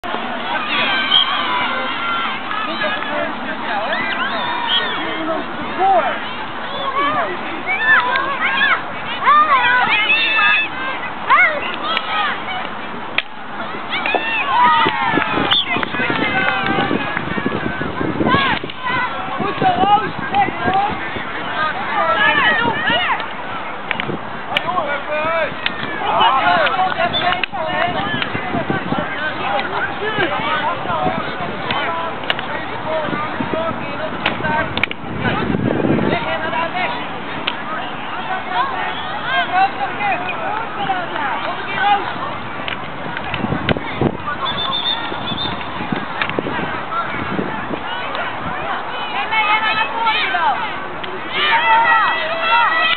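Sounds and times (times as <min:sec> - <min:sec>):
children's voices: 0:00.0 - 0:52.9
high-pitched voices shouting: 0:00.2 - 0:12.6.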